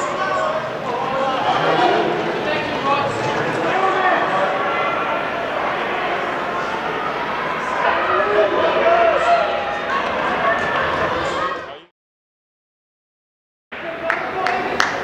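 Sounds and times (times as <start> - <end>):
many voices chattering: 0.0 - 11.9, 13.8 - 15.0.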